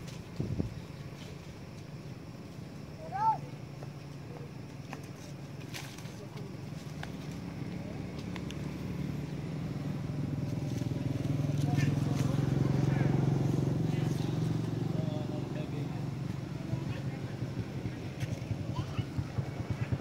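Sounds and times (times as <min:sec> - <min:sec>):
passing vehicle engine hum: 0:00.0 - 0:20.0.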